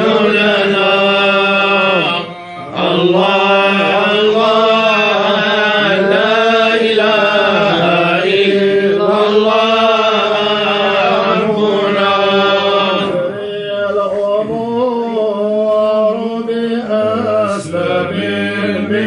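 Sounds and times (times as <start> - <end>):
men chanting in unison: 0.0 - 19.0.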